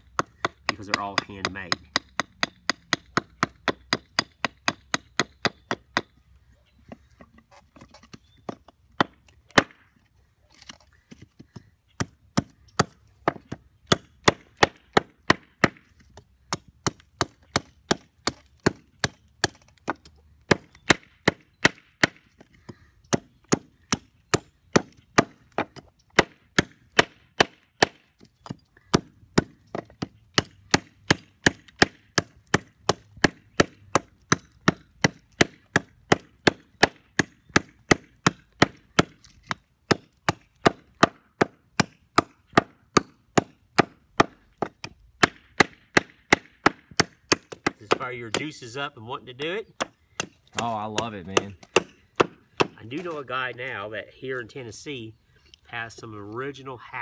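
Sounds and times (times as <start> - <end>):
hatchet chopping wood: 0.0 - 6.2, 8.4 - 53.8.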